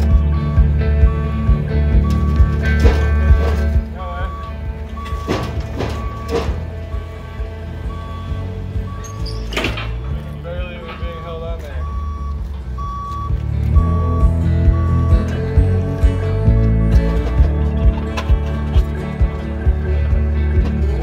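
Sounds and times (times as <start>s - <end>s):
short repeating beeps: 0.0s - 7.2s, 7.8s - 9.5s, 11.6s - 16.1s
background music: 0.0s - 21.0s.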